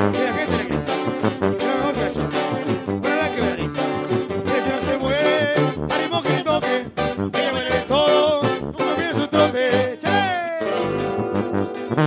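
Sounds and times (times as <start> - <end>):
sousaphone bass line: 0.0 - 12.0
strummed and picked guitars: 0.0 - 12.0.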